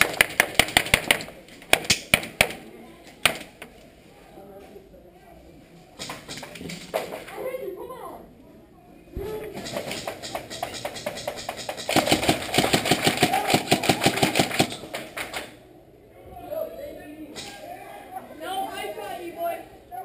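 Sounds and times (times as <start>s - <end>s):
airsoft rifle firing full-auto: 9.6s - 14.8s.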